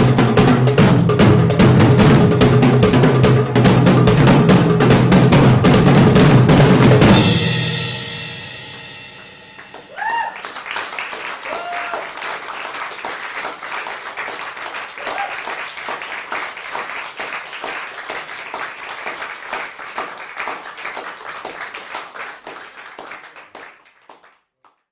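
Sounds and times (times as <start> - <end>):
audience applauding: 9.6 - 24.8.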